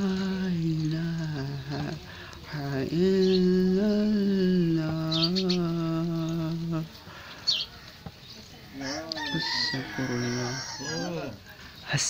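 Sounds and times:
man chanting: 0.0s - 7.1s, 8.9s - 12.0s.

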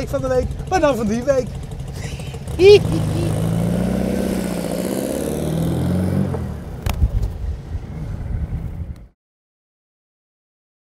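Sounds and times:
car engine running: 0.0s - 6.9s.

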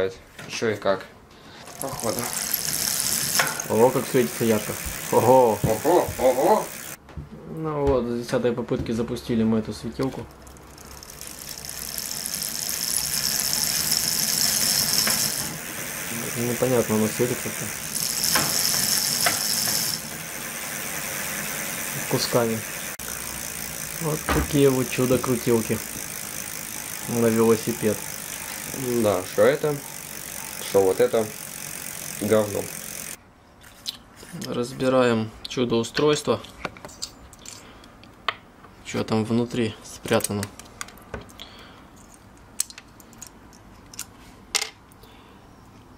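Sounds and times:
bicycle wheel whirring: 1.6s - 7.0s, 10.3s - 33.2s.

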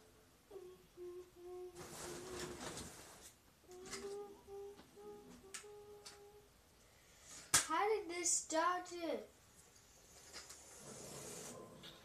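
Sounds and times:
boy humming a tune: 0.5s - 2.9s, 3.6s - 6.6s.

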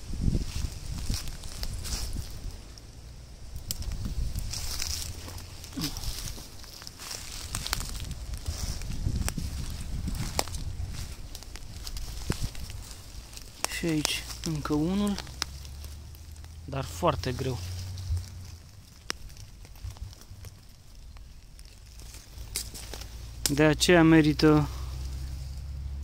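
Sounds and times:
footsteps through dry leaves: 0.0s - 26.0s
steady low rumble: 0.0s - 26.0s
twigs cracking: 0.0s - 26.0s.

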